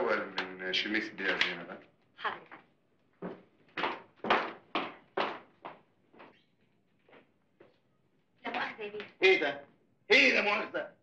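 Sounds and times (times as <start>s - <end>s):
woman's footsteps: 1.6s - 9.2s.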